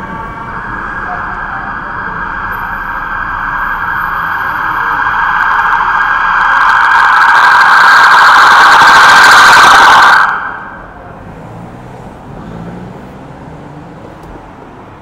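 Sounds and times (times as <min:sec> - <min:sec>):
traffic and engine hum: 0:00.0 - 0:07.0, 0:10.2 - 0:15.0
emergency vehicle siren: 0:00.0 - 0:11.9.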